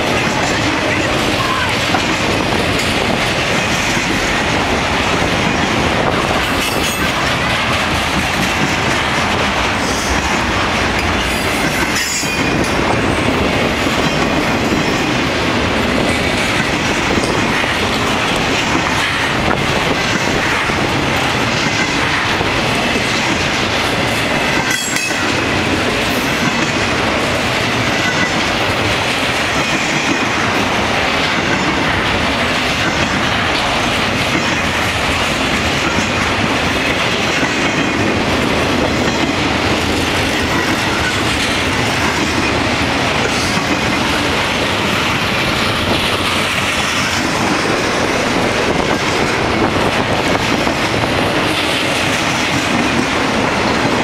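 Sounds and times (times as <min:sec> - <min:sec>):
train wheels rumbling on rail: 0:00.0 - 0:54.0.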